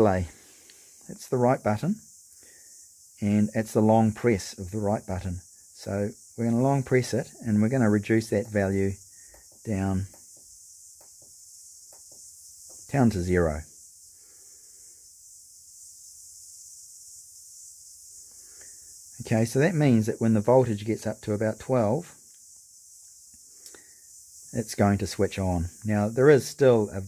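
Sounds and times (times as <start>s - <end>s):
steady high hiss: 0.0s - 27.0s
faint ticks: 0.6s - 1.1s, 22.2s - 24.5s.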